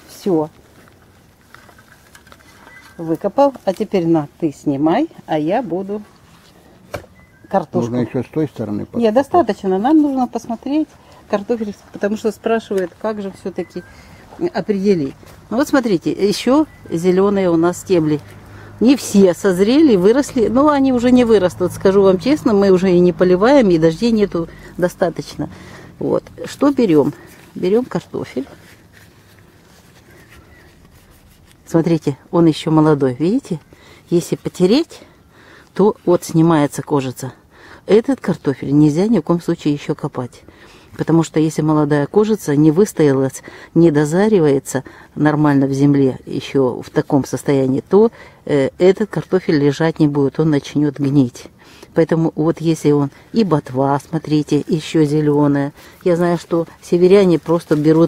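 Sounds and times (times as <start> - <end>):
faint outdoor ambience: 0.0 - 58.0.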